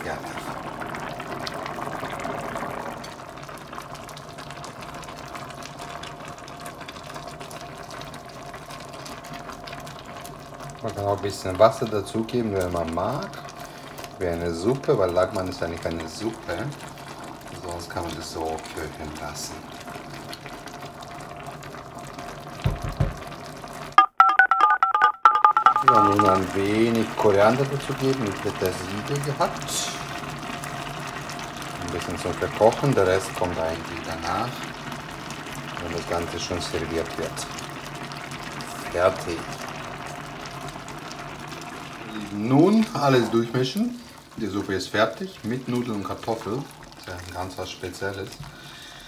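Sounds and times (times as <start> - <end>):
broth bubbling in a pot: 0.0 - 24.0, 25.3 - 49.0
loud two-tone electronic beeps: 24.0 - 26.4.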